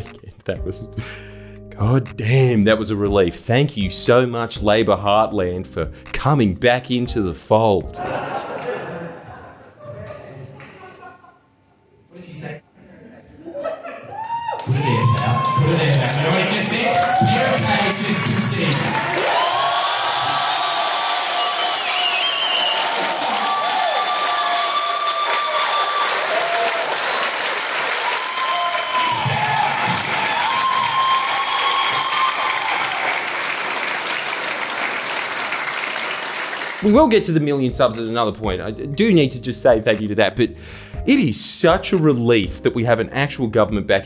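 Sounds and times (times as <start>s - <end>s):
audience cheering: 13.5s - 36.9s
crowd clapping: 14.1s - 37.0s.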